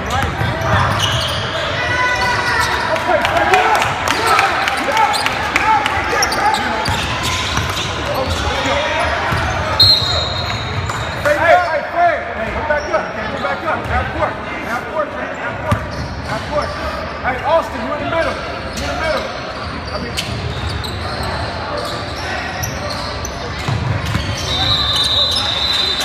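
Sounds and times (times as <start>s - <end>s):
shouts and voices echoing: 0.0s - 15.8s
referee's whistle: 9.4s - 10.8s, 24.2s - 26.0s.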